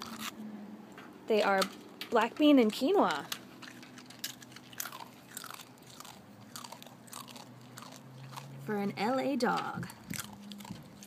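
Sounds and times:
dog crunching chips: 0.0 - 0.4, 1.6 - 11.0.

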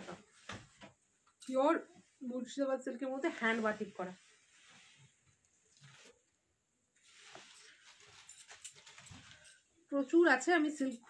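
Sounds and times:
person speaking: 1.5 - 4.2
cloth rustling: 3.0 - 9.7.

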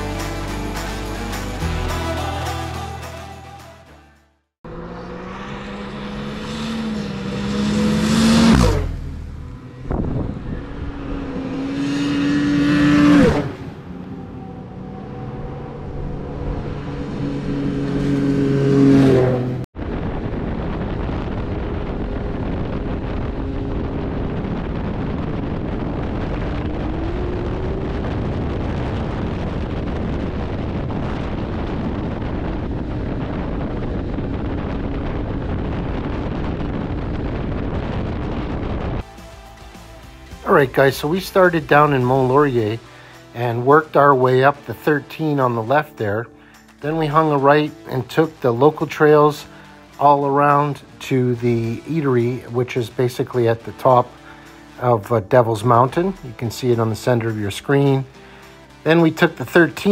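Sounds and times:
snowmobile engine drone: 0.0 - 3.7, 4.6 - 59.9
snowmobiles passing by: 4.7 - 19.6
wind noise: 5.0 - 39.2.

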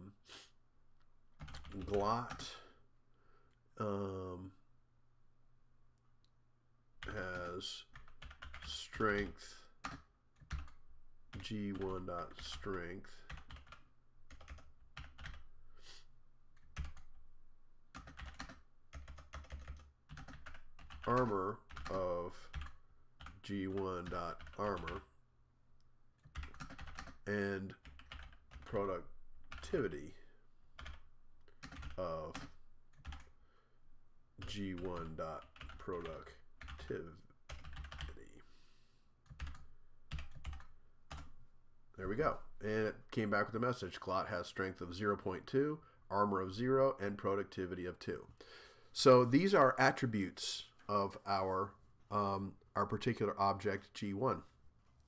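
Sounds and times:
typing on computer keyboard: 1.4 - 2.5, 7.0 - 8.8, 9.8 - 12.6, 13.2 - 15.5, 16.6 - 17.2, 17.9 - 25.0, 26.2 - 27.2, 27.8 - 28.8, 30.8 - 33.3, 34.4 - 36.9, 37.5 - 38.2, 39.2 - 41.3.

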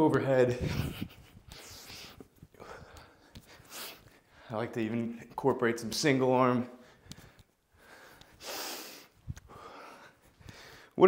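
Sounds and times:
man breathing: 1.2 - 4.6, 6.7 - 11.0.

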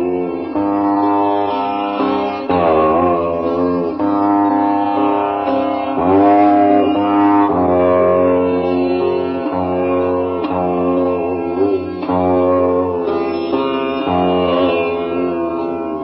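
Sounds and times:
sitar melody with bent notes: 0.0 - 16.0
steady low drone: 0.0 - 16.0.

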